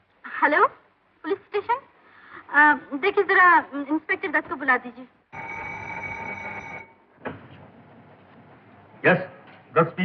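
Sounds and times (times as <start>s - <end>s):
telephone ringing: 5.3s - 7.1s.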